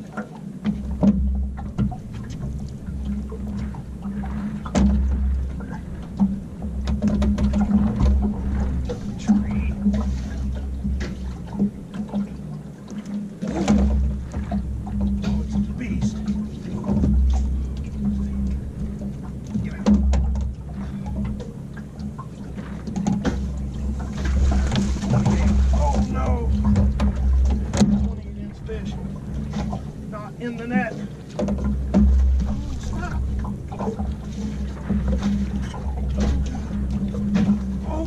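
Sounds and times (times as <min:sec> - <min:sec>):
low rumble and hum: 0:00.0 - 0:38.0
knocks on aluminum boat: 0:00.6 - 0:02.5, 0:03.3 - 0:08.8, 0:13.5 - 0:17.8, 0:19.6 - 0:22.2, 0:22.9 - 0:28.2, 0:31.4 - 0:34.2, 0:34.8 - 0:38.0.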